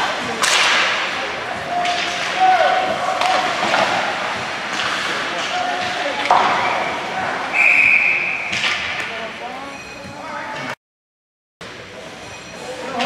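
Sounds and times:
hockey sticks and puck cracking: 0.3 - 6.8, 8.5 - 9.1.

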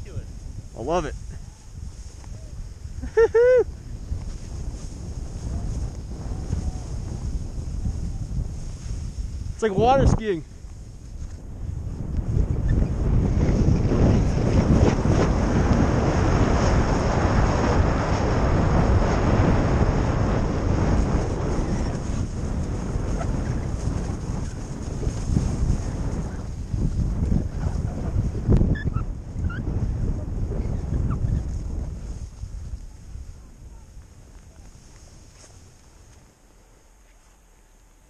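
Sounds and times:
wind rushing over microphone: 0.0 - 37.0
skis hissing through snow: 0.2 - 11.4, 20.9 - 27.3, 34.2 - 38.0.

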